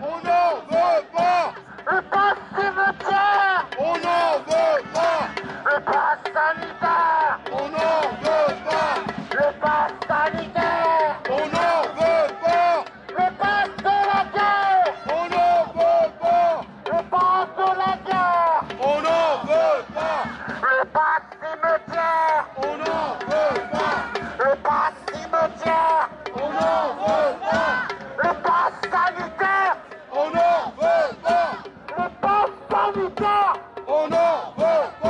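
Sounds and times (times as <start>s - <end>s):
crowd voices: 0.0s - 35.0s
man shouting through megaphone: 0.0s - 35.0s.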